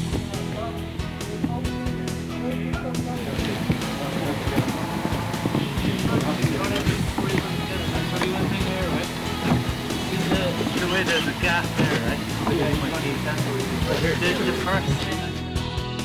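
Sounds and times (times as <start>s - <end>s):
men talking: 0.0s - 15.6s
background music: 0.0s - 16.0s.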